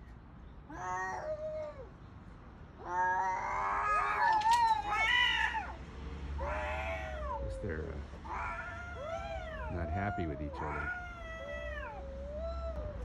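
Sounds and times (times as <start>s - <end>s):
cats yowling: 0.7s - 1.9s, 2.8s - 5.8s, 6.4s - 13.0s.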